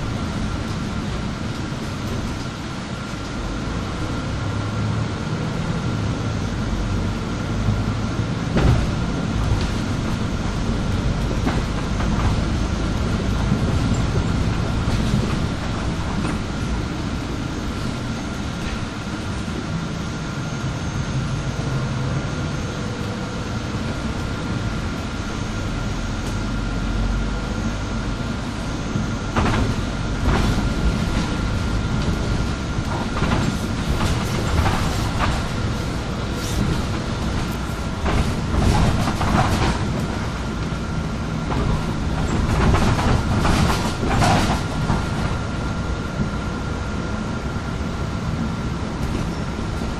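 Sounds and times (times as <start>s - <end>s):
rattles and knocks from bus body: 0.0s - 3.4s, 5.5s - 19.8s, 28.2s - 47.4s, 48.2s - 49.9s
bus engine and road rumble: 0.0s - 49.9s
faint steady whine: 16.5s - 29.4s.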